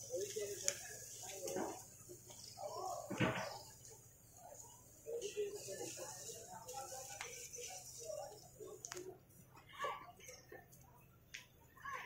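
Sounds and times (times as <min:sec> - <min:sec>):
background voices talking: 0:00.0 - 0:12.0.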